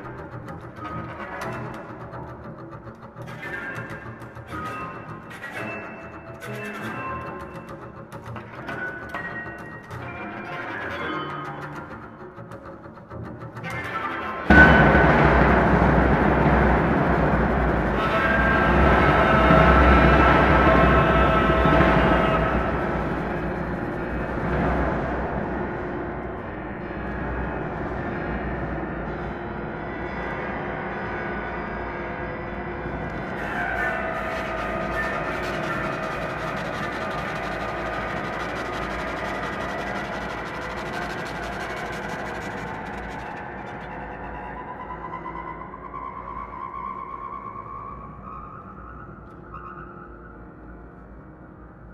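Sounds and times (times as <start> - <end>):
sliding pitches: 32.6 - 51.0
chamber ensemble held tones: 32.8 - 49.5.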